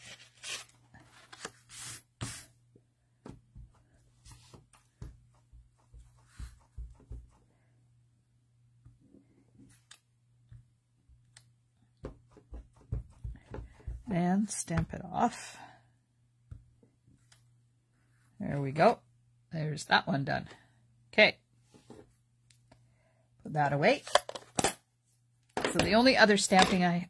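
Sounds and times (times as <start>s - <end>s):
paper sliding and rustling: 0.0s - 2.5s.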